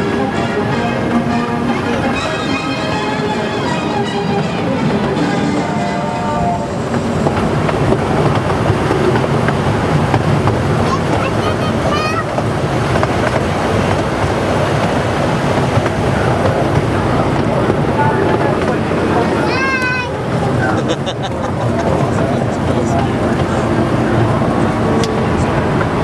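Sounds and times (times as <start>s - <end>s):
music: 0.0s - 6.6s
ride cars rumbling on track: 0.0s - 26.0s.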